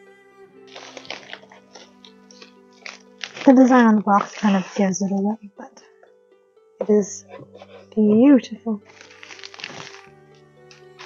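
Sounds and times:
background music: 0.0 - 11.0
plastic mailer crinkling: 0.7 - 4.9, 8.8 - 10.1.

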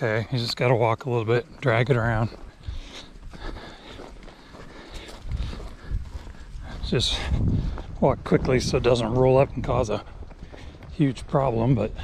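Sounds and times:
footsteps: 0.0 - 12.0.

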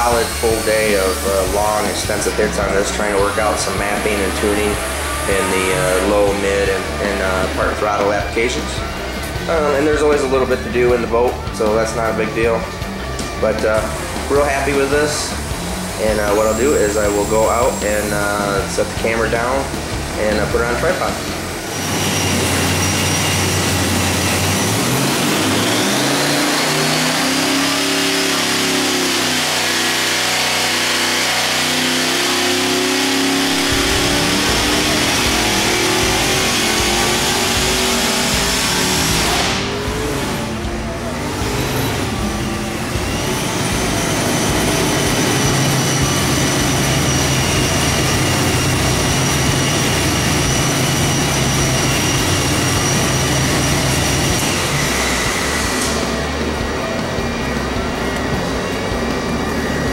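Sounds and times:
engine revving: 0.0 - 59.9
supercharger high whine: 0.0 - 59.9.

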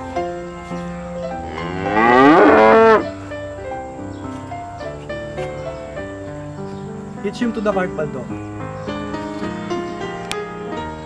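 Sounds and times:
water buffalo lowing: 0.0 - 3.5
sustained background music: 0.0 - 11.0.

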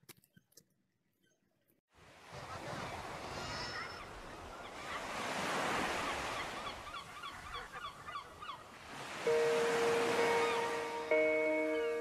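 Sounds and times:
music with held notes: 9.3 - 12.0.

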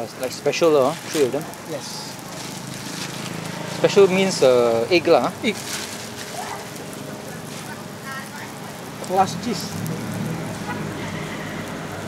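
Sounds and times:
meat sizzling on a griddle: 0.0 - 12.0.

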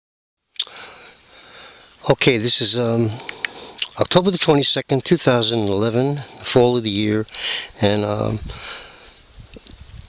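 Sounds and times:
faint hiss with high tone: 0.6 - 9.5.

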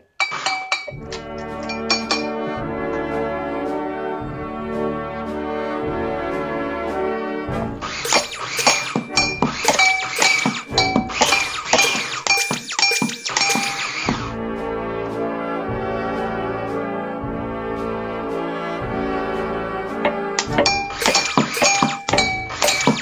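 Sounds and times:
clinks and taps on household objects: 0.0 - 2.4, 8.1 - 13.8, 20.4 - 23.0
high ringing note: 0.2 - 2.4, 20.5 - 23.0.

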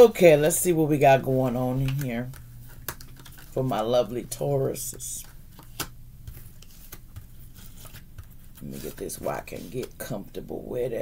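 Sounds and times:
low steady hum: 0.0 - 11.0
cards tapping and rustling on table: 1.8 - 3.6, 4.8 - 10.0.

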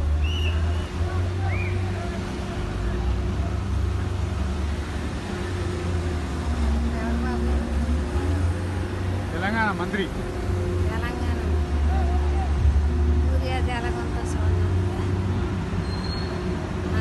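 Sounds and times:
voices calling out: 0.0 - 9.3.

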